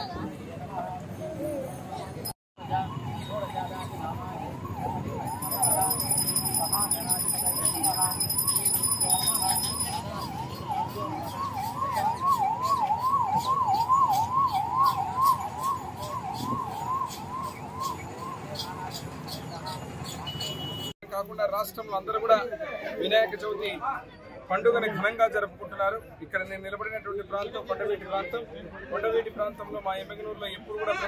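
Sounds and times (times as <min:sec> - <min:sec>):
outdoor crowd noise: 0:00.0 - 0:31.0
siren-like electronic tone wailing: 0:02.6 - 0:18.4.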